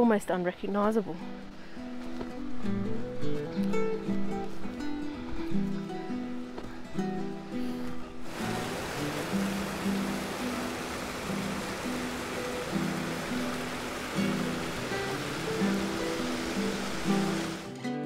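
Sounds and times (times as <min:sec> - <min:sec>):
guitar music: 0:01.2 - 0:18.0
water rushing over rocks: 0:08.2 - 0:17.7.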